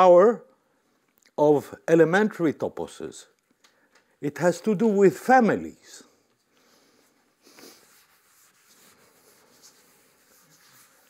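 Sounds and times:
eraser rubbing on chalkboard: 7.5s - 11.0s.

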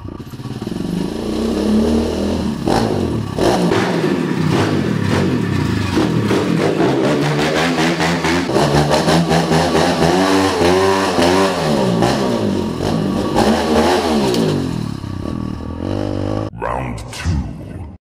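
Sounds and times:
motorbike engine revving: 0.0s - 16.5s.

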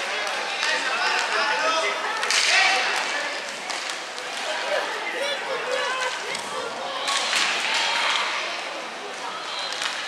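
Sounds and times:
sticks and puck clacking: 2.2s - 4.6s.

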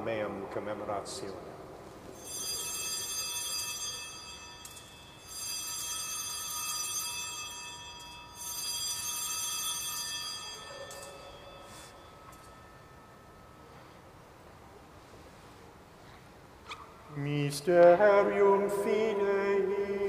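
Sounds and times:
altar bell ringing: 2.2s - 14.8s.

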